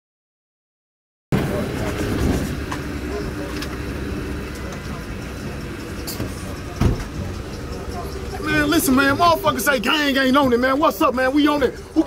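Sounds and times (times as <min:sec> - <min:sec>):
low vehicle rumble: 0:01.3 - 0:12.0
indistinct voices: 0:01.4 - 0:12.0.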